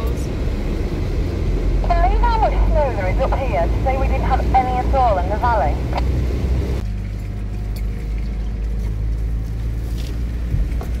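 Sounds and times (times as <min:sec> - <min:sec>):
vehicle engine and tyres drone: 0:00.0 - 0:11.0
person talking: 0:01.8 - 0:05.8.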